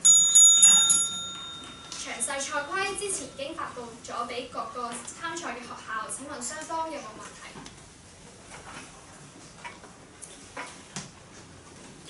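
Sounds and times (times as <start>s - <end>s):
small metal bell ringing: 0.0s - 3.8s.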